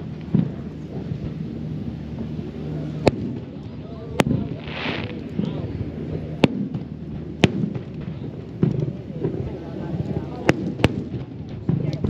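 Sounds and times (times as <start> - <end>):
crowd talking: 0.0 - 12.0
firework shells bursting: 3.0 - 5.7
short firework hiss: 4.2 - 5.5.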